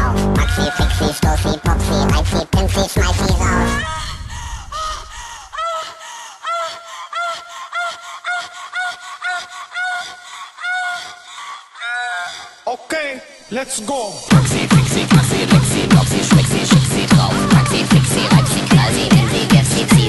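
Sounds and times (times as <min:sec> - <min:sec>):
electronic dance music: 0:00.0 - 0:03.8, 0:13.9 - 0:20.0.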